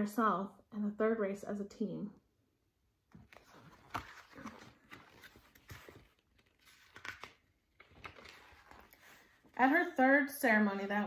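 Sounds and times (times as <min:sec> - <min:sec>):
book pages rustling: 0:03.1 - 0:09.8.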